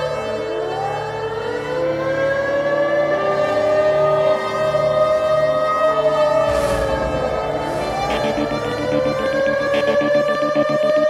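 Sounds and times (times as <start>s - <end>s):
low drone: 6.0s - 11.0s
synthesizer tones sliding in pitch: 6.0s - 11.0s.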